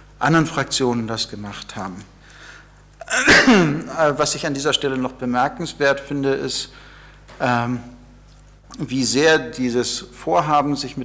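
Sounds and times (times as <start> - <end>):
person sneezing: 3.0 - 3.8.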